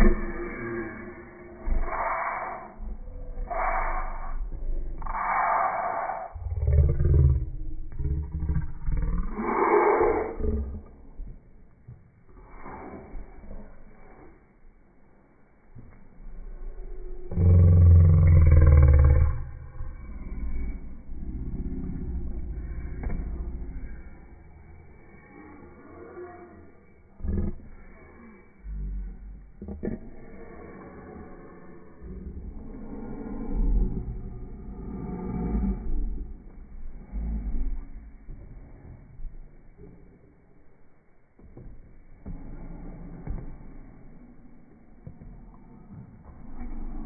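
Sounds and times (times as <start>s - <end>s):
person growling loudly: 0.0s - 11.2s, 16.8s - 20.5s
person growling: 0.0s - 11.4s, 16.5s - 23.9s, 25.3s - 38.2s.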